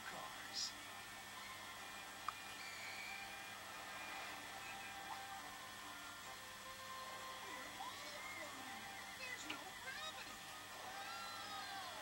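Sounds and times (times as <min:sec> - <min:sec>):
tape hiss and hum: 0:00.0 - 0:12.0
whistled tweet: 0:02.5 - 0:03.4.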